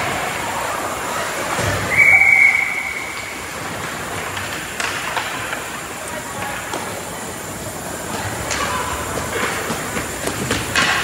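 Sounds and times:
ice rink crowd noise: 0:00.0 - 0:11.0
referee's whistle blast: 0:01.9 - 0:03.3.

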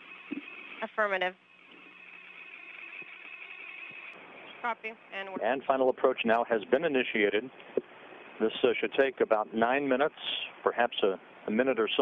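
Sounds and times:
faint low hum: 0:00.0 - 0:12.0
radio channel hiss: 0:00.0 - 0:12.0.

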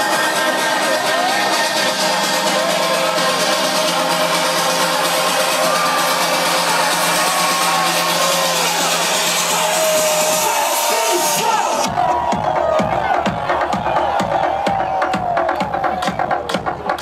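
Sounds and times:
crowd voices: 0:00.0 - 0:17.0
loud trance dance music: 0:00.0 - 0:17.0.

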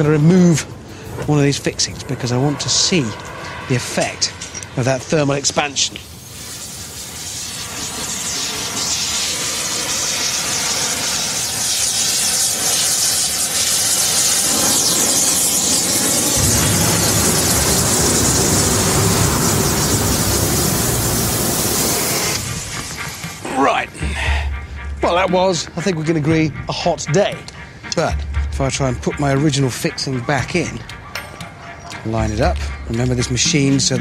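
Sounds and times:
cutting torch hissing: 0:00.0 - 0:24.6
deep rumble: 0:16.1 - 0:21.7.

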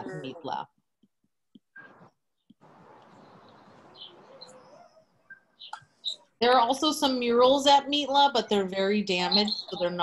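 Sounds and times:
high bird-like chirps: 0:03.1 - 0:06.3.

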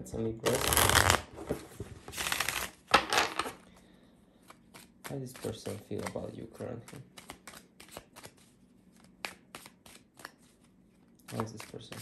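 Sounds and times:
cards being shuffled: 0:00.4 - 0:03.6, 0:04.4 - 0:12.0.

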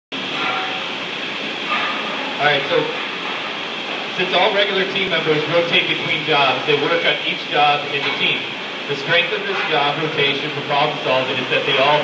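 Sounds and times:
ventilation rushing: 0:00.1 - 0:12.0
faint hum: 0:00.2 - 0:12.0.

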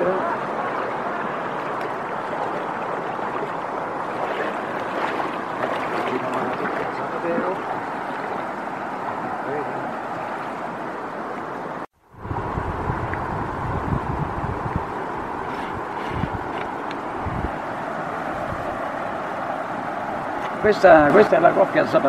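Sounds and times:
wind buffeting microphone: 0:00.0 - 0:21.3
river water rushing over weir: 0:00.0 - 0:22.0.

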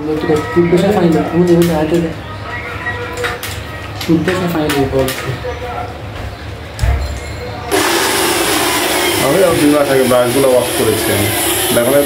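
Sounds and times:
cleaning machine rushing hiss: 0:07.7 - 0:12.0.

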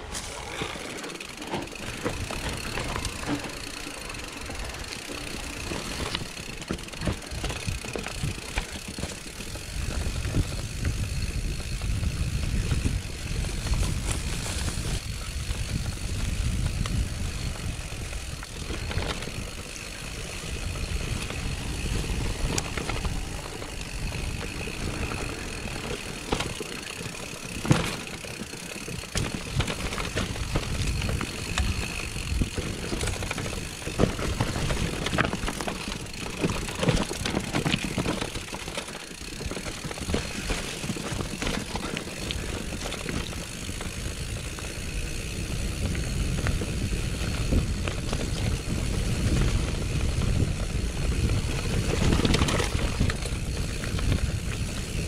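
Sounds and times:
bike rattling and knocking: 0:00.0 - 0:55.0
bike tyre noise: 0:00.0 - 0:55.0
wind buffeting microphone: 0:01.7 - 0:26.6, 0:29.0 - 0:38.5, 0:39.4 - 0:55.0.

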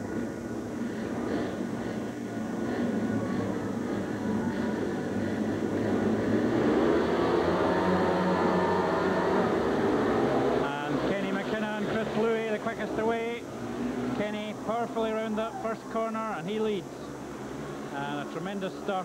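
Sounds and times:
motorcycle engines revving: 0:00.0 - 0:19.0.

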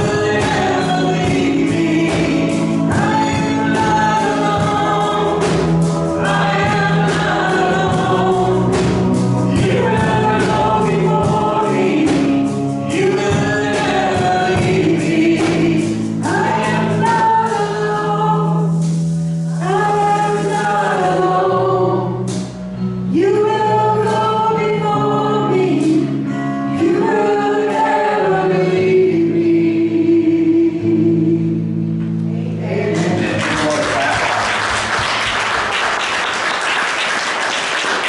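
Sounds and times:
group singing worship chorus: 0:00.0 - 0:18.8, 0:19.4 - 0:31.6.

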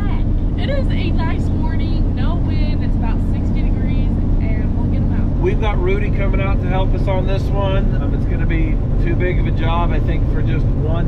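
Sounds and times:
engine and road drone: 0:00.0 - 0:11.0
people talking: 0:00.0 - 0:11.0.

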